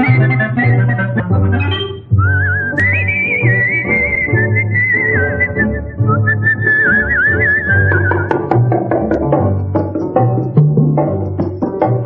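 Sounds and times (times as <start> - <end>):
whistled melody: 0.0 - 8.9.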